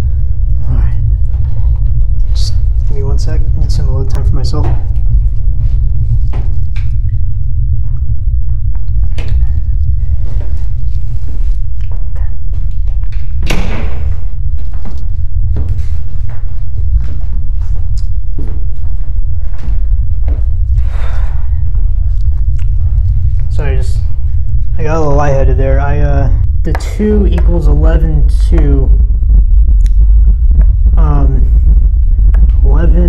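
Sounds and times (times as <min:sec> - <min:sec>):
deep rumble: 0:00.0 - 0:33.0.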